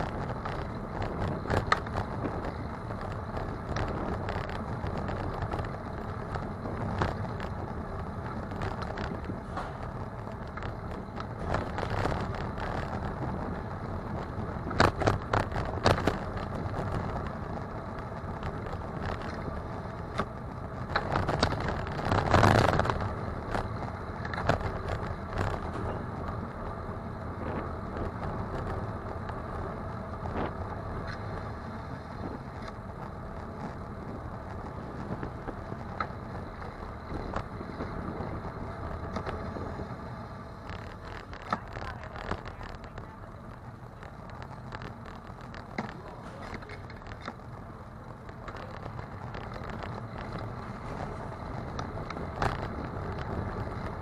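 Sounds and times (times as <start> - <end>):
bicycle tyre road noise: 0.0 - 54.0
bike knocking and rattling over bumps: 0.0 - 54.0
rush of noise: 8.4 - 16.3.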